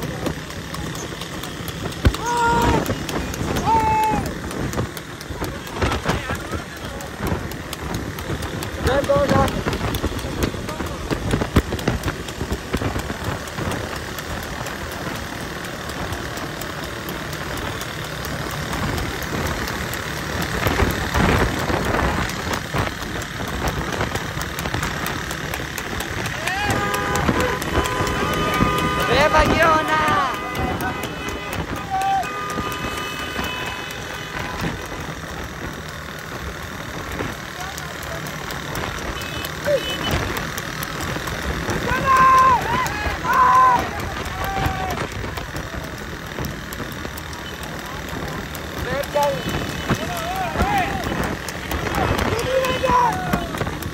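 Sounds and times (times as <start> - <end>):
motorcycle engines running: 0.0 - 53.9
men shouting: 2.1 - 4.5, 26.2 - 34.3, 41.6 - 45.2, 49.0 - 53.8.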